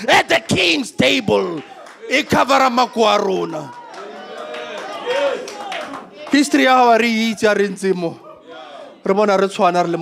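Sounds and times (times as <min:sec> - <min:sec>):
man preaching over microphone: 0:00.0 - 0:03.7, 0:06.3 - 0:10.0.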